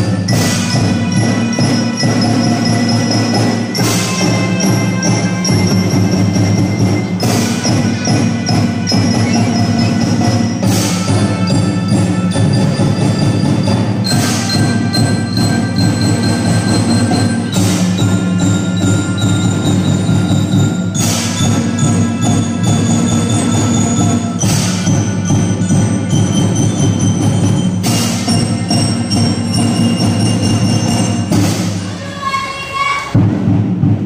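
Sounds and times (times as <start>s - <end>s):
melodicas and mallet keyboards: 0.0s - 31.8s.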